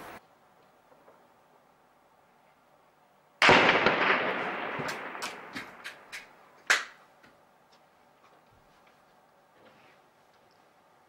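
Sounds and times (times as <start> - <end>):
loud gunshots echoing: 3.4 - 6.1
faint sharp cracks: 3.4 - 7.0.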